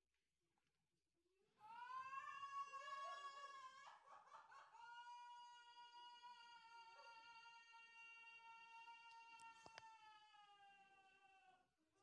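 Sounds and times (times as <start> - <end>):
faint high-pitched wail: 1.6 - 4.0, 4.7 - 11.6.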